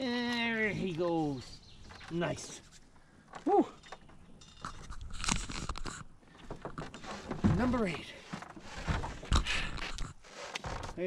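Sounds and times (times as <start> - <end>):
scraping in aluminum boat: 4.7 - 9.3.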